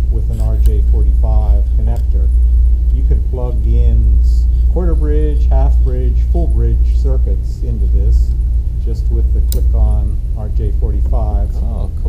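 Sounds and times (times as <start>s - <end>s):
man talking: 0.0s - 12.0s
steady low rumble: 0.0s - 12.0s.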